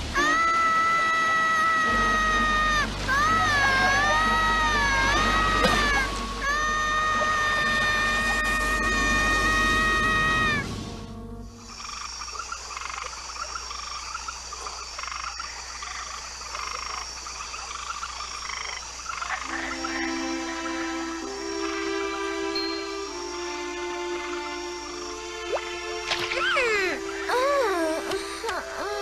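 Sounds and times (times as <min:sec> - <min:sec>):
soft sustained music notes: 0:00.0 - 0:12.0, 0:19.4 - 0:29.0
held musical chord: 0:10.7 - 0:11.7, 0:19.5 - 0:29.0
frogs croaking: 0:11.4 - 0:29.0.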